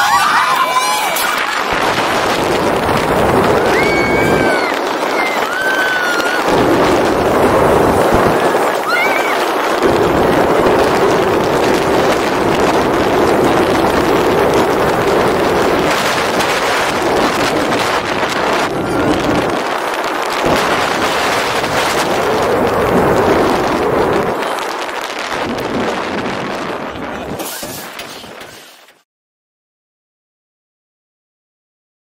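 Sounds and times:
wind buffeting microphone: 0.0 - 28.7
roller coaster train rumbling on track: 0.0 - 29.0.

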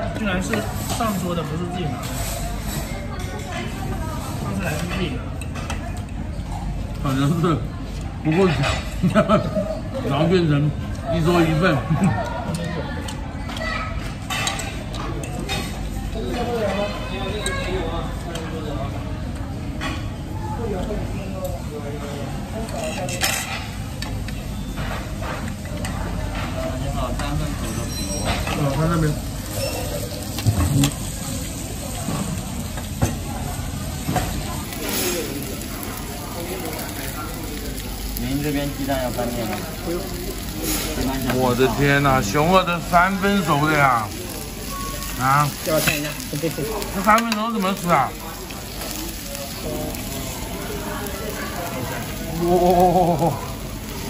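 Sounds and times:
steak sizzling on hot metal: 27.9 - 54.0.

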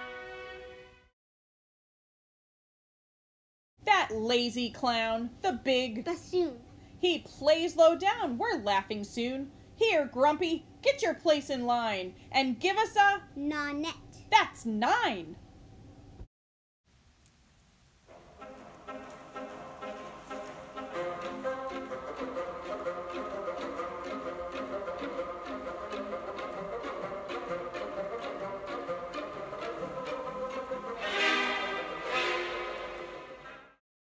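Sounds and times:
classical chamber music with violin: 18.4 - 33.4.

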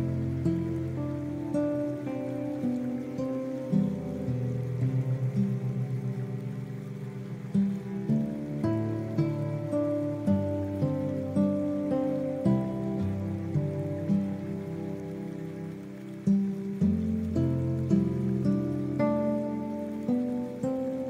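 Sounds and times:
gentle guitar music: 0.0 - 21.0
rain: 0.0 - 21.0.

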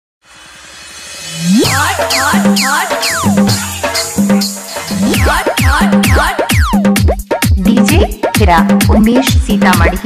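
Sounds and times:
noisy riser with low pulse: 0.2 - 7.1
falling laser synth sweeps: 0.3 - 6.7
upward gliding synth tone: 1.3 - 6.7.

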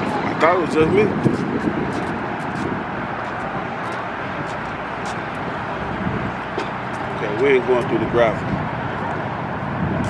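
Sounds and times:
outdoor car traffic: 0.0 - 10.0.

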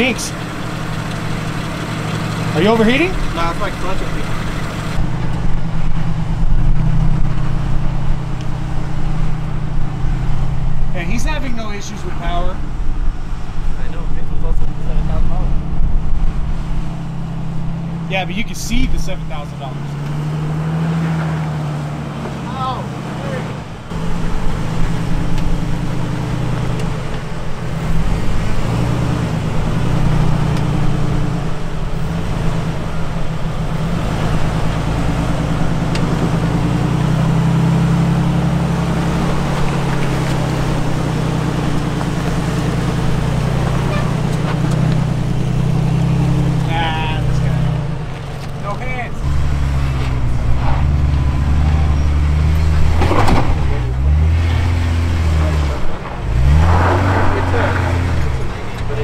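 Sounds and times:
car engine revving under load: 0.0 - 59.0.

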